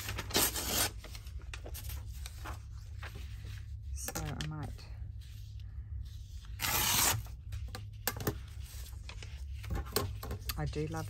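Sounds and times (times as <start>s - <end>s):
paper page tearing: 6.5s - 7.3s.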